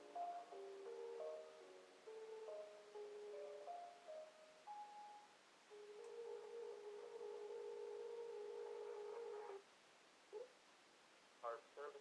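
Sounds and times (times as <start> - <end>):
telephone hold music: 0.0 - 9.6.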